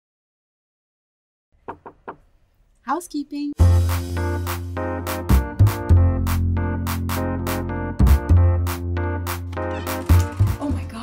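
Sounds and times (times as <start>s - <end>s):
knocking on wooden door: 1.6s - 2.3s.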